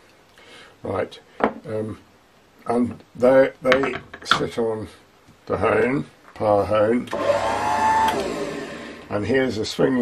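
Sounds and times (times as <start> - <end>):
electric motor whining: 7.1 - 9.1.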